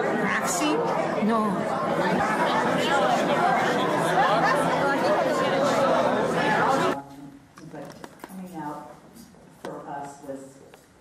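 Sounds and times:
overlapping chatter of crowd: 0.0s - 11.0s.

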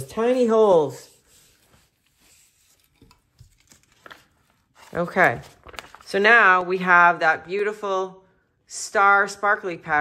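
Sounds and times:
rice paper rubbing and crinkling: 0.0s - 6.3s.

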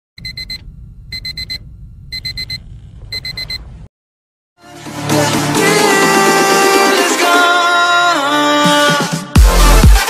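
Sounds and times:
digital alarm clock beeping: 0.2s - 3.6s
low hum: 0.2s - 3.9s.

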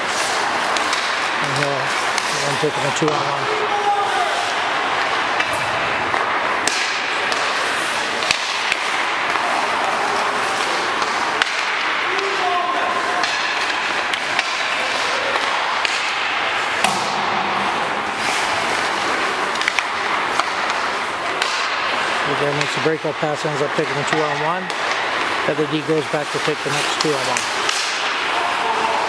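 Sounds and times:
distant players' voices: 0.0s - 29.0s
pucks clacking on sticks and boards: 0.0s - 29.0s
skates scraping ice: 0.0s - 29.0s.

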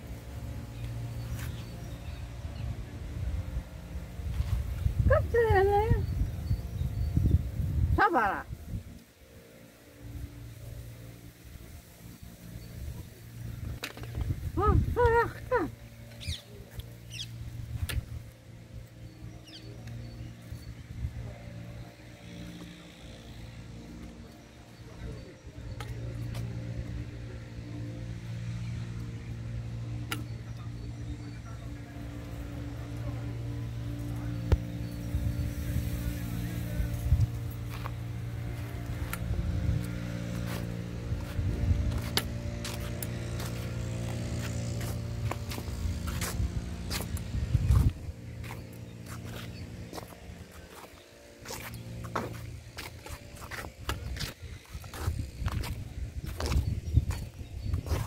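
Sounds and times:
low mechanical hum: 0.0s - 58.0s
footsteps crunching on gravel: 37.1s - 58.0s.

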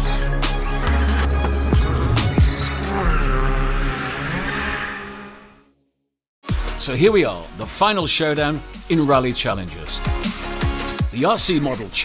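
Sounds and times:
rally car engine revving: 0.4s - 5.6s.

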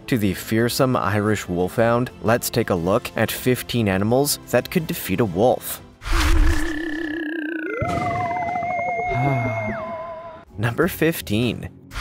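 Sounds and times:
tone gliding down in pitch: 7.5s - 10.4s
wavering theremin-like tone: 7.6s - 10.4s.

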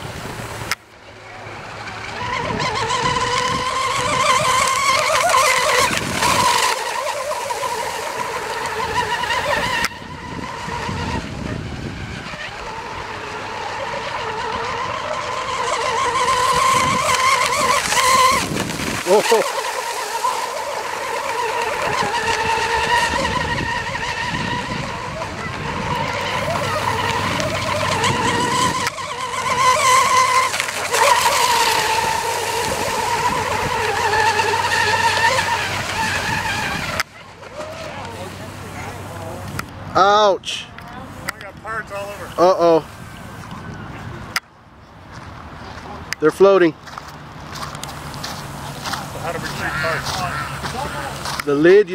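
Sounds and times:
model boat motor whining: 0.0s - 51.9s.

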